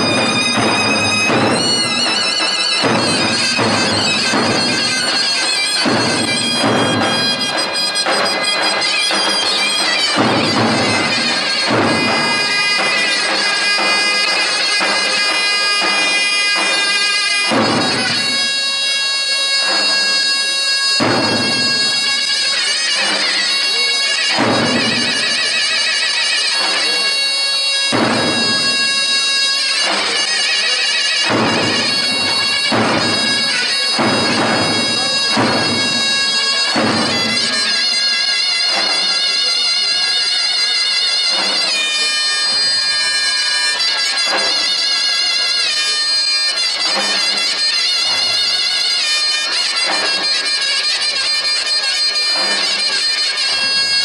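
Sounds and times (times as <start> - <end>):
shawm playing a folk tune: 0.0 - 54.0.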